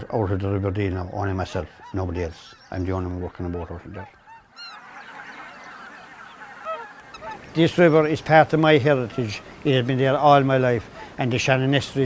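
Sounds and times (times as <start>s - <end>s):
flock of swans calling: 0.2s - 12.0s.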